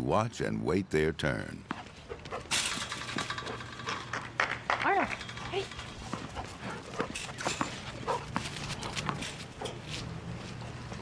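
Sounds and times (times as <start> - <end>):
dog claws tapping on concrete: 2.3 - 10.0
tennis ball bouncing on concrete: 2.7 - 5.3, 7.0 - 10.0.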